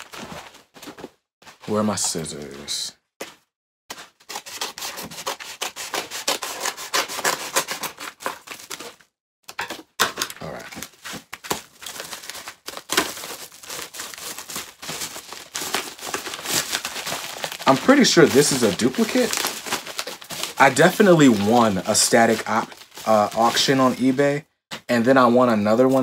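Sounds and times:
scissors cutting paper mailer: 4.2 - 10.3, 11.6 - 24.0.

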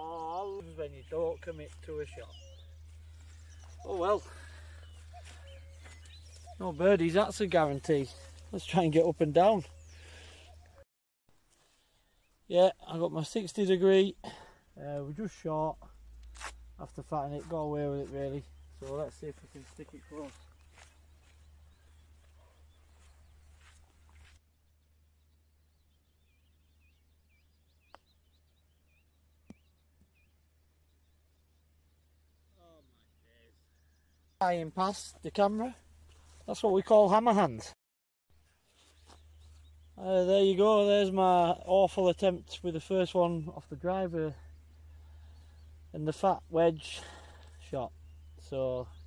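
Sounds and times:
faint bird chirps: 0.0 - 10.8, 14.2 - 34.4.

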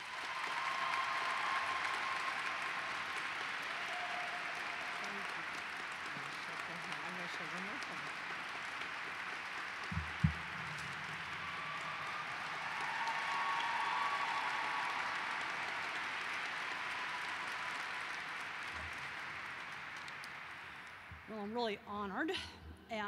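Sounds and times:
audience applauding: 0.0 - 21.6.

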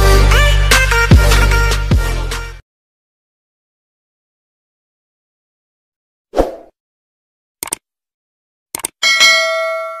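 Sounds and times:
mouse clicks: 7.6 - 7.8, 8.8 - 9.0
bright bell chime: 9.0 - 10.0.

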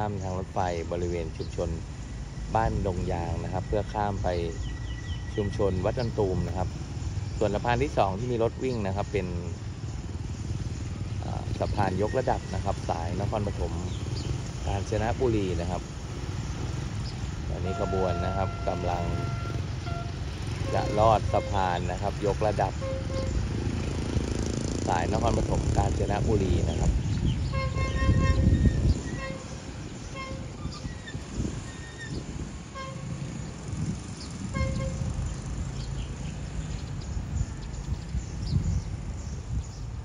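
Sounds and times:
locomotive low rumble: 0.0 - 10.1, 10.8 - 35.7
motorcycle engines passing: 0.0 - 40.0
locomotive horn toots: 17.4 - 24.2, 27.4 - 32.1, 32.7 - 33.4, 34.4 - 35.4.

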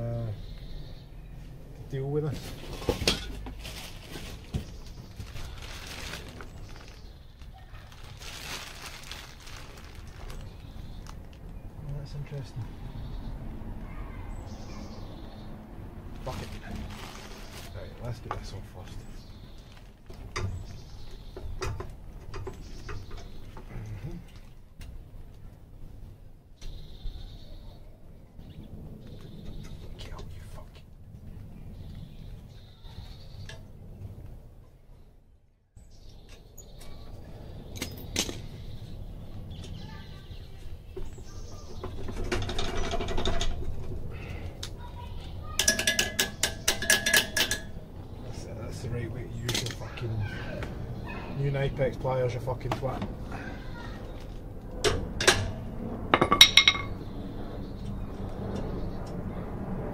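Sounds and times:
hand tools clinking on metal: 45.6 - 47.8.

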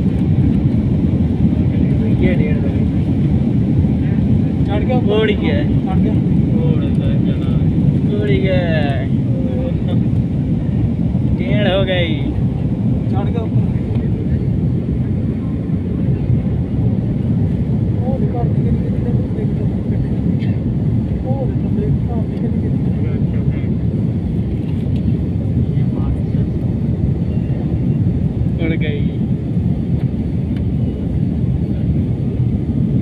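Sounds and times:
jet engines rumbling: 0.0 - 33.0
rushing air: 0.0 - 33.0.

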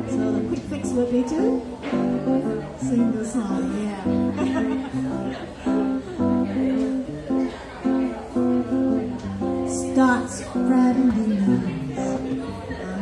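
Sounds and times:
acoustic guitar strumming chords: 0.0 - 12.6.

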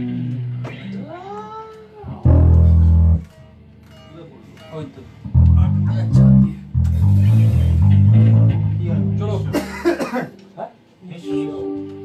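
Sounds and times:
rock band bass note: 2.2 - 3.4, 5.3 - 9.6.

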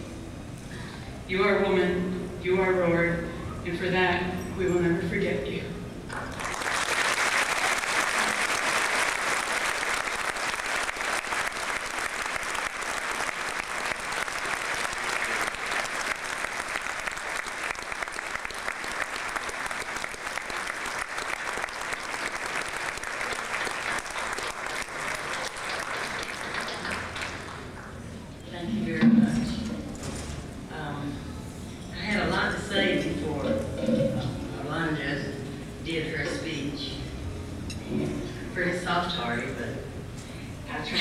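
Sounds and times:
crowd applauding: 6.1 - 28.0.

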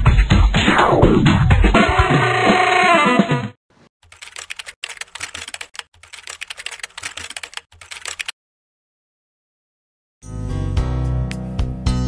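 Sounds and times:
rapid keyboard typing: 4.0 - 8.4.

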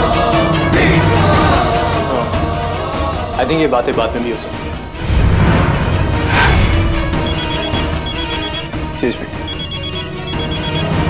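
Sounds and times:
telephone electronic trilling ring: 7.2 - 8.8, 9.4 - 11.0.

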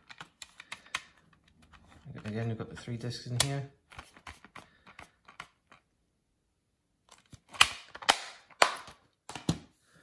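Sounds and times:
plastic case clicks and knocks: 7.2 - 9.7.

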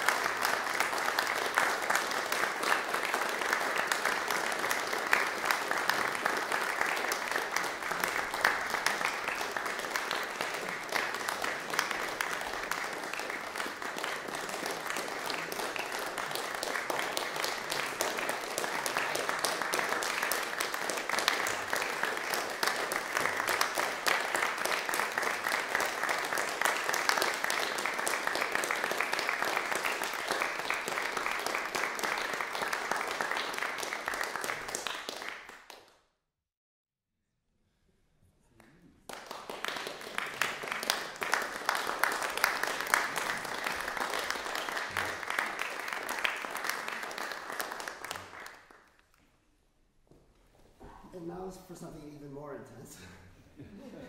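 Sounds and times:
audience applauding: 0.0 - 36.0, 38.6 - 49.2.

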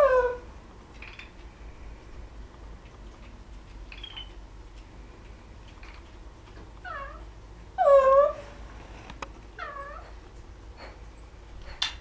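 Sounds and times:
parrot calling: 0.0 - 1.3, 3.9 - 4.4, 6.8 - 8.5.

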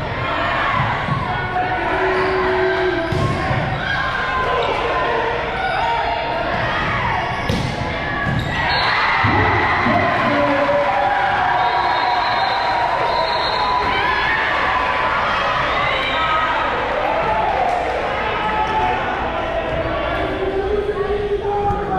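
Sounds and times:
crowd cheering: 0.0 - 21.9
people talking and shouting: 0.0 - 21.9
volleyball hits: 3.0 - 3.8, 6.5 - 10.5.

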